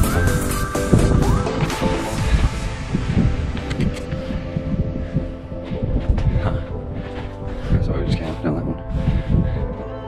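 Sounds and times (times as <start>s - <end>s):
low thumps and rumble: 0.0s - 9.8s.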